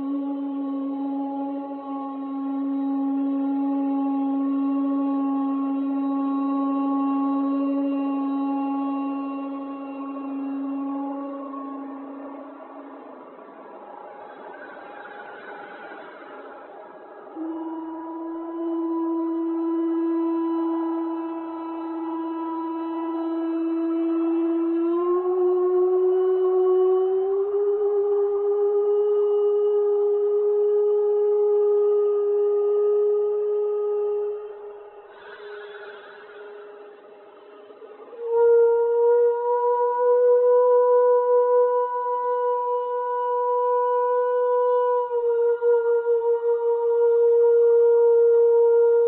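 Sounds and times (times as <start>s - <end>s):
music of long sustained notes: 0.0s - 49.0s.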